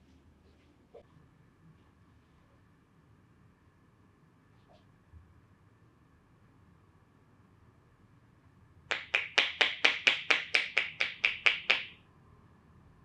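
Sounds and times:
hands slapping in massage: 8.9s - 11.9s.

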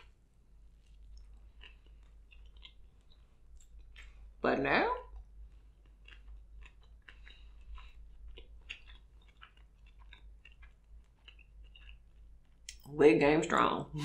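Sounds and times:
chewing food close up: 0.0s - 4.4s, 5.0s - 12.9s.

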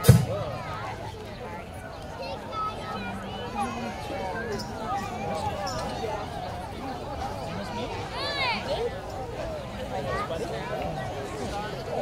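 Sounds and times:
chatter of several voices: 0.0s - 12.0s.

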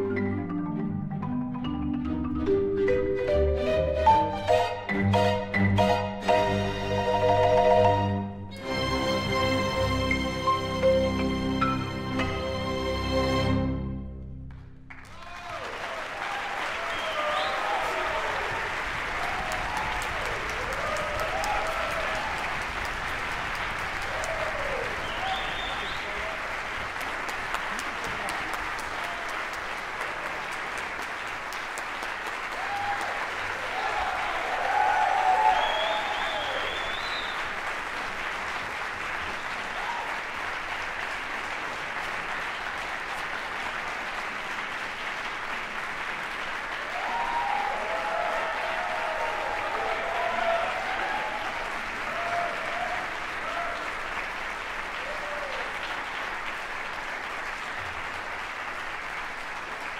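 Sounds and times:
audience applauding: 14.5s - 59.9s
people calling and cheering: 15.1s - 22.8s, 23.8s - 26.7s, 32.5s - 37.5s, 46.8s - 54.2s, 55.0s - 55.8s.

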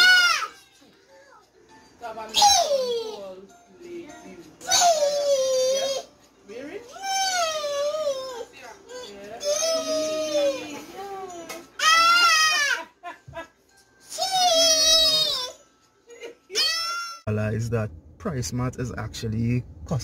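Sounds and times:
high-pitched wailing cries: 0.0s - 0.6s, 6.9s - 8.5s, 11.8s - 12.9s, 14.1s - 15.7s, 16.5s - 17.3s.

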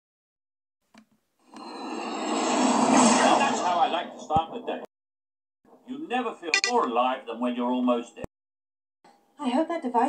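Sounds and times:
person speaking: 6.6s - 6.9s.

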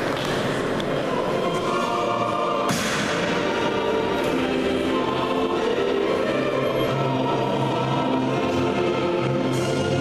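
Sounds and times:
choir singing long notes: 0.8s - 10.0s.

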